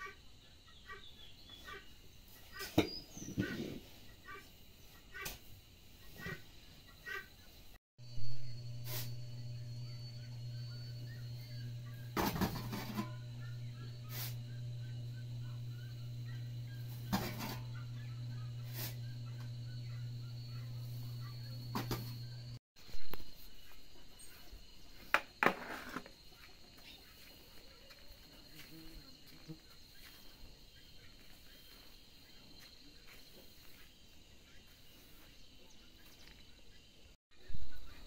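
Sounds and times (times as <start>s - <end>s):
high insect trill: 4.2s - 38.0s
steady low hum: 8.0s - 24.5s
shovel scraping through feed: 8.8s - 9.2s, 14.0s - 14.4s, 18.6s - 19.1s
push broom scraping tiled floor: 8.8s - 9.4s, 11.8s - 13.2s, 14.0s - 14.5s, 16.7s - 19.4s.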